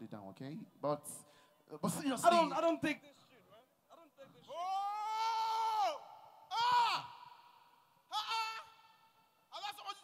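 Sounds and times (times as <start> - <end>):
man's high-pitched wailing cry: 4.5 - 7.3, 8.1 - 9.0.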